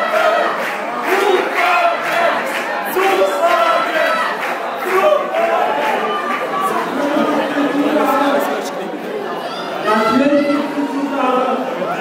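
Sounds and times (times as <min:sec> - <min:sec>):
echoing chatter in large hall: 0:00.0 - 0:12.0
man talking into microphone: 0:06.9 - 0:09.0, 0:09.8 - 0:12.0.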